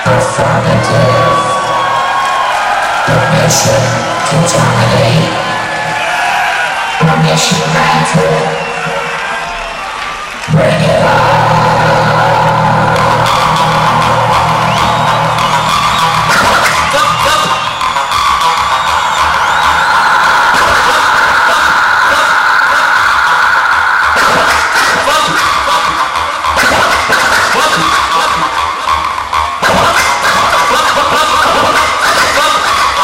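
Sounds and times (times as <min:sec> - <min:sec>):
loud dj music through speakers: 0:00.0 - 0:33.0.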